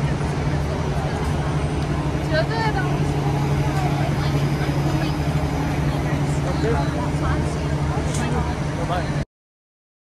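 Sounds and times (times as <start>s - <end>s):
passers-by talking faintly: 0.0s - 9.2s
traffic hum: 0.0s - 9.2s.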